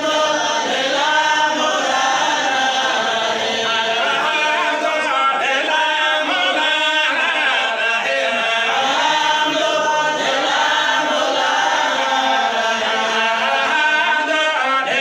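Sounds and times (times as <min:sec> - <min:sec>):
group of voices chanting: 0:00.0 - 0:15.0.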